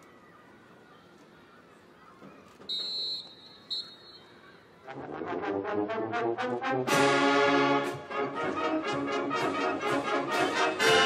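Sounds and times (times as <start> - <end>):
faint crowd noise: 0.0 - 11.0
high whistle blasts: 2.7 - 4.3
marching band brass: 4.9 - 11.0.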